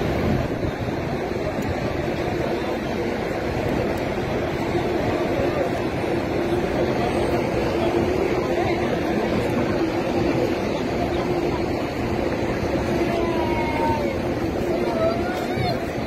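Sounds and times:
crowd voices din: 0:00.0 - 0:16.0.

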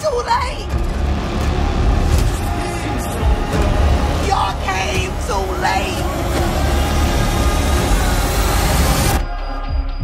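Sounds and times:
loud low rumble: 0:00.6 - 0:09.2
noisy clamour: 0:01.0 - 0:09.2.

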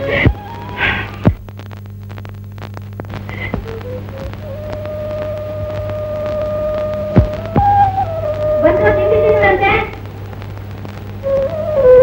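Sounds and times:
low hum and crackle: 0:00.0 - 0:12.0.

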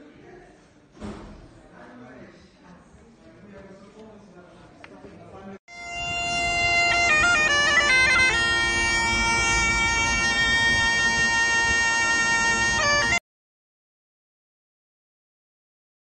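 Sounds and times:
bagpipes playing: 0:05.7 - 0:13.2.

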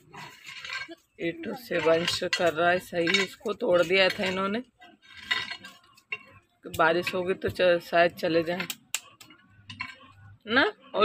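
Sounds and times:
woman's voice: 0:00.8 - 0:04.8, 0:06.7 - 0:08.8, 0:10.4 - 0:11.0.

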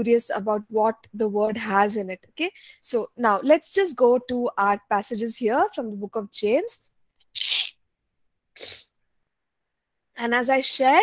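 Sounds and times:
person sneezing: 0:08.6 - 0:08.9.

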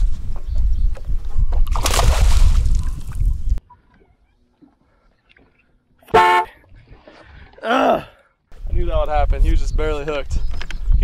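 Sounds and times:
water sloshing against boat hull: 0:01.6 - 0:07.6.

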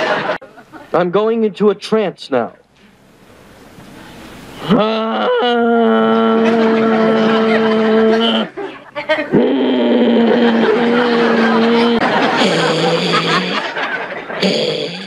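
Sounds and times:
person chanting long held tones: 0:04.7 - 0:08.5, 0:09.6 - 0:13.8.

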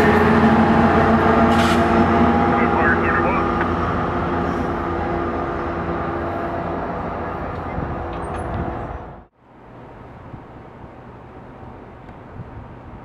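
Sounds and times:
train cars rumbling on rails: 0:00.0 - 0:09.3
diesel locomotive engine hum: 0:00.0 - 0:13.0.

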